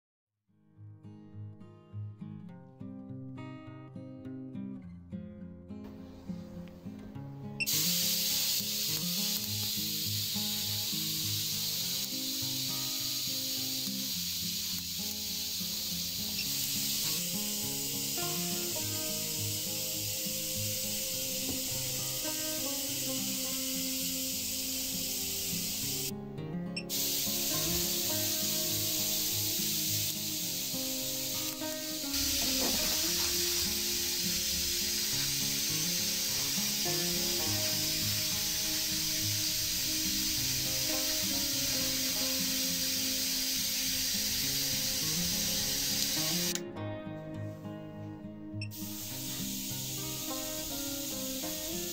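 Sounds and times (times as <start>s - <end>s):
background music: 5.8s - 51.9s
high-pitched corona discharge hiss: 7.6s - 26.1s, 26.8s - 46.7s, 48.6s - 51.9s.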